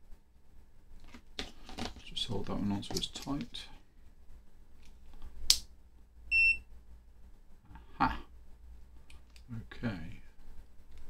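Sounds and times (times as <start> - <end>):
short high-pitched beep: 6.3 - 6.6.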